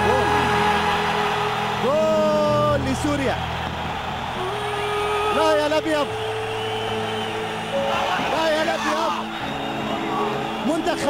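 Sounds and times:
crowd shouting: 0.0 - 11.0
stadium crowd din: 0.0 - 11.0.

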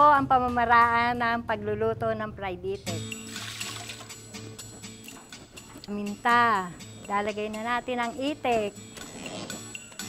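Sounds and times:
background music: 0.0 - 10.0
liquid pouring into metal pot: 3.2 - 4.2.

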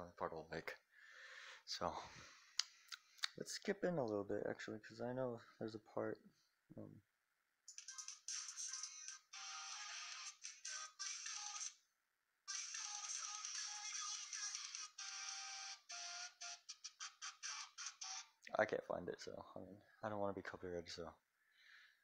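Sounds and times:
song through phone speaker: 7.8 - 11.8, 12.5 - 17.6.

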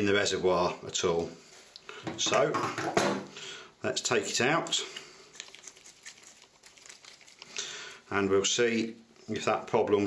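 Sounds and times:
faint rustling of gloved hands: 4.1 - 8.2.

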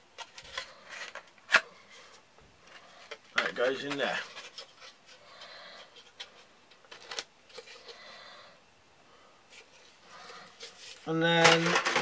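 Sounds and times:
tin rustling and scraping in holder: 0.0 - 8.3, 9.5 - 12.0.

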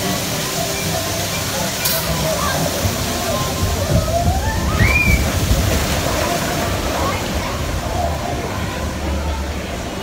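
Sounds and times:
water rushing and splashing: 0.0 - 10.0.

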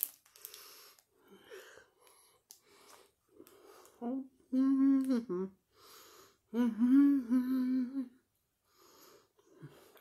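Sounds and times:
woman humming while eating: 4.0 - 5.6, 6.5 - 8.2.

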